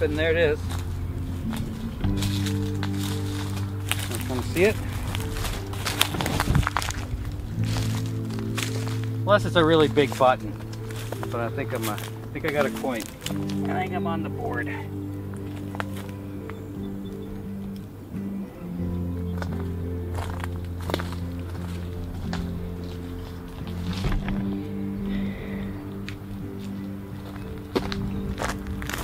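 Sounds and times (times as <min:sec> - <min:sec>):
footsteps: 0:00.0 - 0:13.9, 0:14.7 - 0:16.6, 0:19.3 - 0:29.0
music of long low notes: 0:00.0 - 0:29.0.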